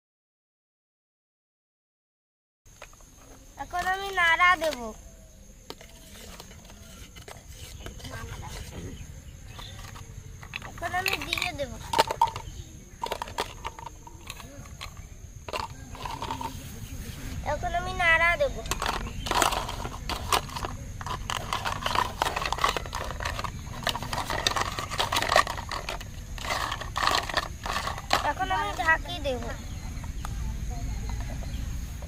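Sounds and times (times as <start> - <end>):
toy spoon scraping in pot: 5.7 - 8.8, 9.5 - 16.6, 18.6 - 29.6
toy cookware clinking: 9.6 - 16.6, 18.6 - 29.5.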